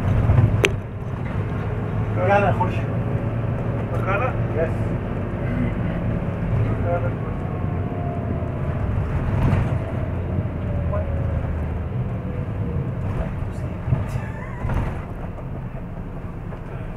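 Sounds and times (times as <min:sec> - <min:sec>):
car driving low rumble: 0:00.0 - 0:16.9.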